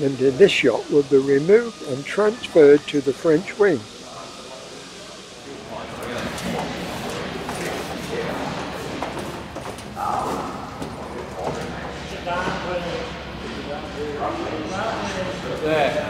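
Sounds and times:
people talking in echoing hall: 0:00.0 - 0:16.0.

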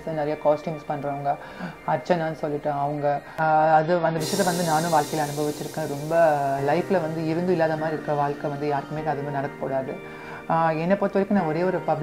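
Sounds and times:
woman talking: 0:00.0 - 0:12.0
steady high hiss: 0:04.2 - 0:10.9.

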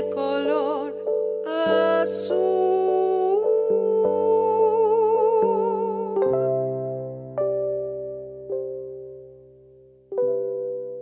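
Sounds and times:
soft piano chords: 0:00.0 - 0:11.0.

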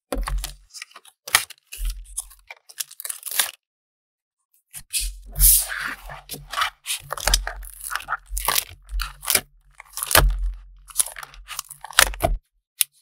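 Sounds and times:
plastic sleeves crinkling: 0:00.2 - 0:03.6, 0:05.3 - 0:12.4.

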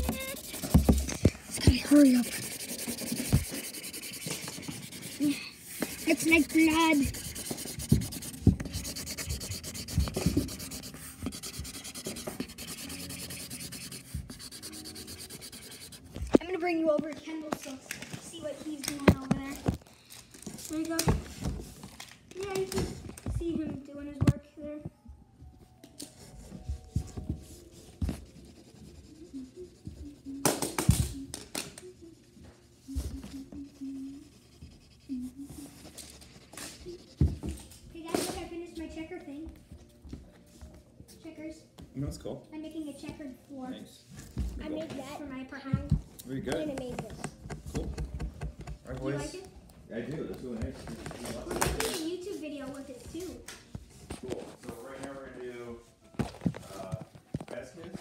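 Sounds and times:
marker scribbling on cardboard: 0:00.0 - 0:16.4, 0:26.0 - 0:30.6, 0:32.0 - 0:37.6.

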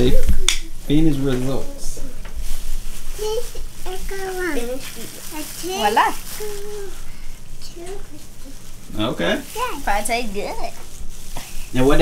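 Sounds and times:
child making wordless vocal sounds: 0:03.2 - 0:07.1.

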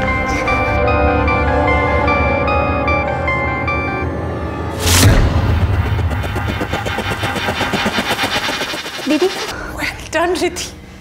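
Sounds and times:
suspense music stuttering pulses: 0:04.7 - 0:10.2
low rumble: 0:04.8 - 0:09.7.

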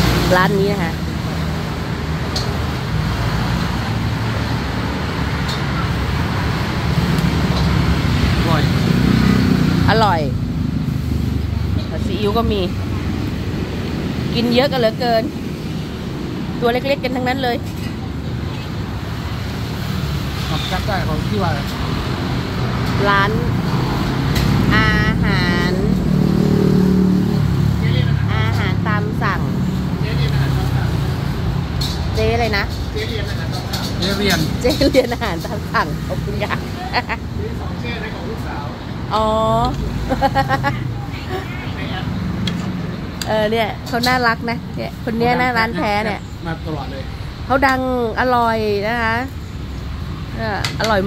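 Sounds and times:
road traffic rumble: 0:00.0 - 0:51.0
person speaking: 0:43.3 - 0:49.3.

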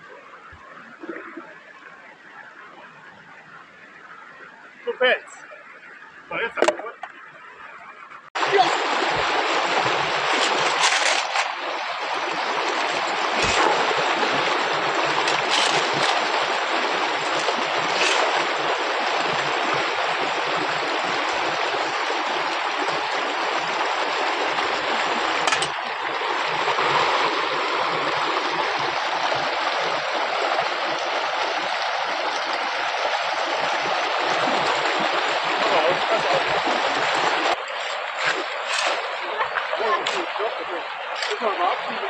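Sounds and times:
stream rushing over gravel: 0:08.4 - 0:42.0.

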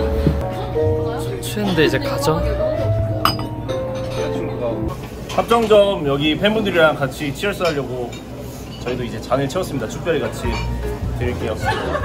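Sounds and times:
background music: 0:00.0 - 0:05.3
glass clink: 0:03.2 - 0:04.5.

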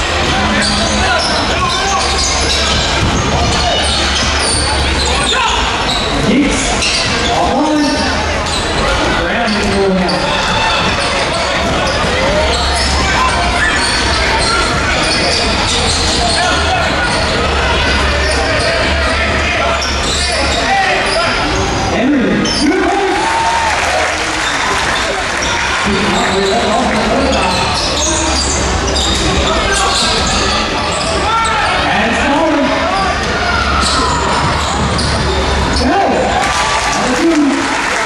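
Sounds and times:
echoing crowd chatter: 0:00.0 - 0:38.0.

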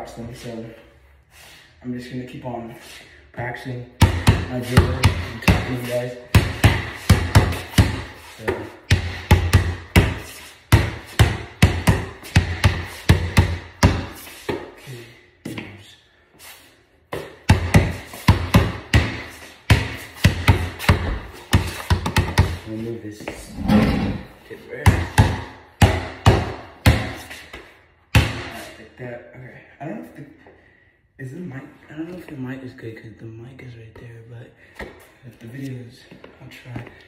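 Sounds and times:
basketball bouncing on concrete: 0:04.0 - 0:14.7, 0:17.1 - 0:22.6.

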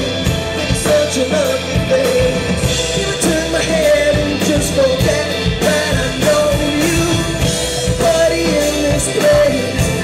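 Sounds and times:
drums and cymbals: 0:00.0 - 0:10.0
man singing: 0:00.0 - 0:10.0.

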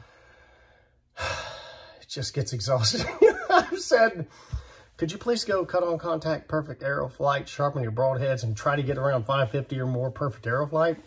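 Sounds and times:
man sighing: 0:01.2 - 0:01.9.

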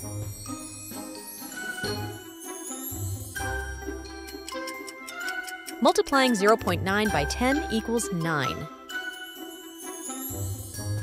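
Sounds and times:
light background music: 0:00.0 - 0:11.0
clock ticking: 0:04.4 - 0:08.7
person speaking: 0:05.8 - 0:08.7.

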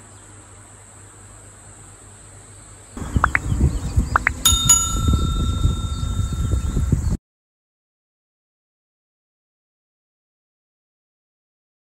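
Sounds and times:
short rising chirps: 0:03.0 - 0:06.9
low rumbling noise: 0:03.0 - 0:07.2
small metal bell ringing: 0:04.5 - 0:07.1.

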